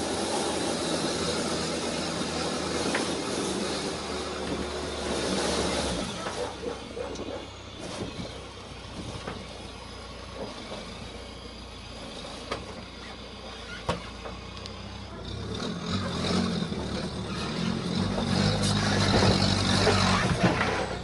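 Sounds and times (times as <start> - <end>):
diesel engine running slowly: 0.0 - 21.0.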